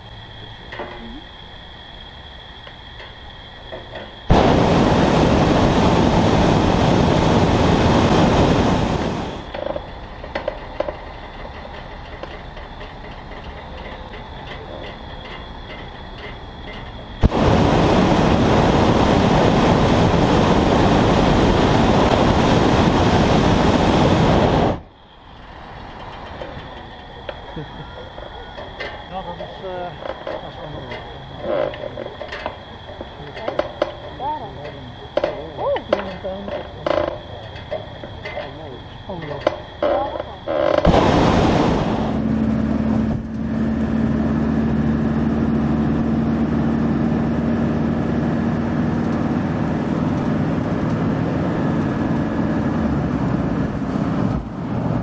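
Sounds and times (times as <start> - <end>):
propane burner firing: 4.2 - 13.6, 16.7 - 24.8, 40.6 - 46.8.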